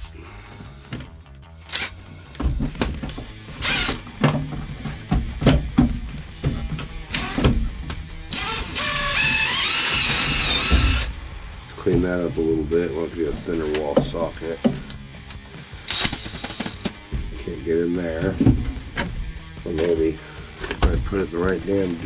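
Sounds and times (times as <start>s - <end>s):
background music: 0.0s - 22.0s
impact driver running: 3.6s - 4.3s, 7.1s - 7.6s, 8.3s - 11.2s
tool knocks and clatter: 4.0s - 8.1s, 18.2s - 19.3s.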